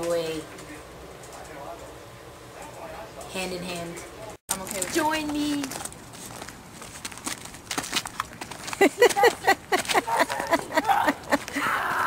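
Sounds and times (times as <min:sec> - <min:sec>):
footsteps skipping on asphalt: 0:04.7 - 0:10.6.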